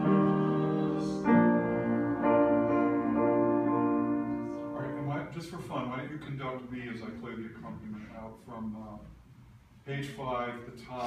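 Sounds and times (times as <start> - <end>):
piano playing slow chords: 0.0 - 5.3.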